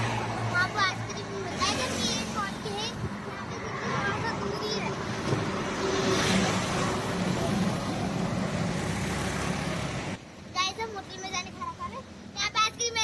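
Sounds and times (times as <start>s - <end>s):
highway traffic rushing: 0.0s - 13.0s
child's voice: 0.4s - 5.1s, 10.5s - 13.0s.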